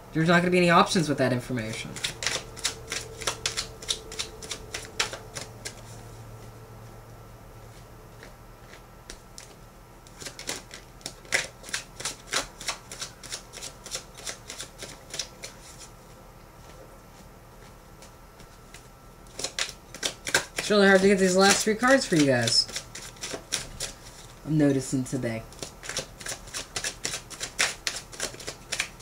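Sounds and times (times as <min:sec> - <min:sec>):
cards being shuffled: 0:01.7 - 0:06.0, 0:08.2 - 0:15.9, 0:18.0 - 0:24.4, 0:25.5 - 0:29.0.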